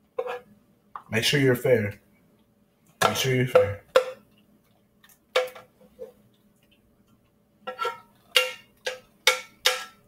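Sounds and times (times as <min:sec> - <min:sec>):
utensil knocking on metal skillet: 0:07.7 - 0:10.0.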